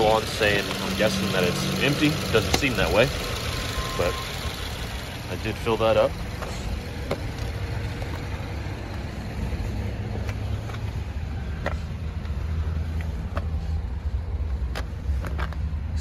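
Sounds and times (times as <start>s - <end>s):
car engine idling: 0.0s - 16.0s.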